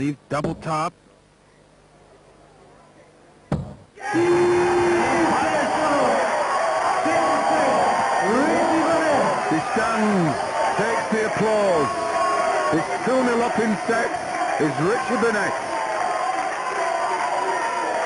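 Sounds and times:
crowd cheering and shouting: 4.0s - 18.0s.

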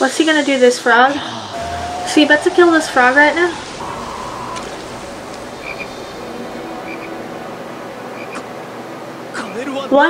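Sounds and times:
steady background hiss: 0.0s - 10.0s
frog croaking: 1.5s - 7.2s.

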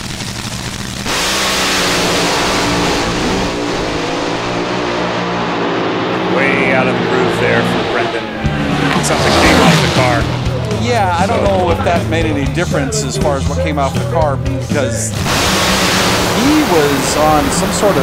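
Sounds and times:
tire spinning: 0.0s - 12.2s, 15.1s - 18.0s
dragster engines roaring: 0.0s - 18.0s.

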